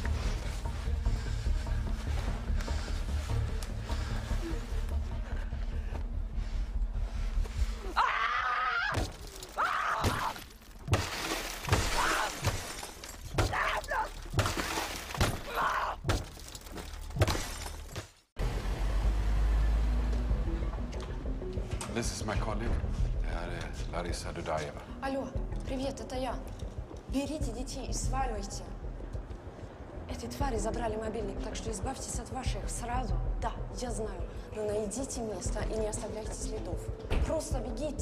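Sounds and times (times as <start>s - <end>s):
low music drone: 0.0s - 7.8s
glass breaking: 9.0s - 15.5s, 16.1s - 18.1s.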